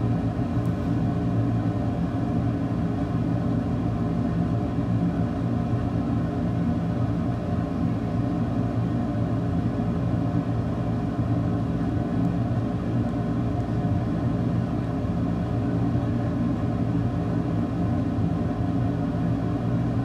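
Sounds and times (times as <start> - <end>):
low machine hum: 0.0 - 20.0.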